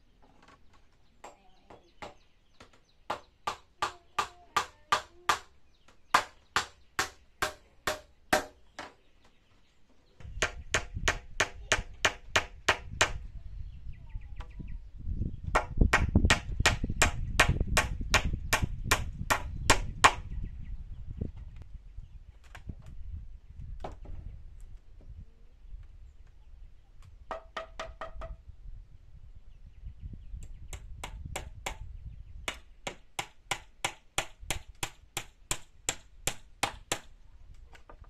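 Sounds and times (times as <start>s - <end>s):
hammer driving nails into wood: 6.2s - 8.9s.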